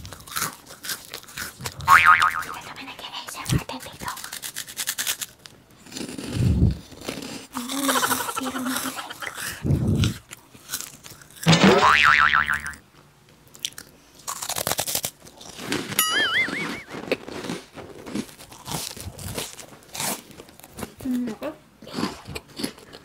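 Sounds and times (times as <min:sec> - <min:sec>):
crunching and chewing snacks: 0:00.0 - 0:01.9, 0:03.4 - 0:11.5, 0:13.5 - 0:23.0
short wobbling pitched tones: 0:01.9 - 0:02.6, 0:11.5 - 0:12.8, 0:16.0 - 0:17.0.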